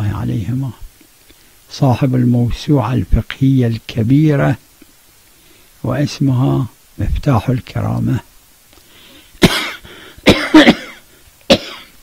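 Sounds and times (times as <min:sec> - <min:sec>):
elderly man coughing: 0:09.4 - 0:12.0.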